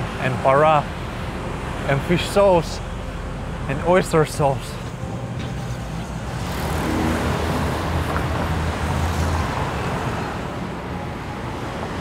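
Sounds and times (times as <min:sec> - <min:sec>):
vehicle engine rumble: 0:00.0 - 0:11.2
rumble of passing cars: 0:00.0 - 0:12.0.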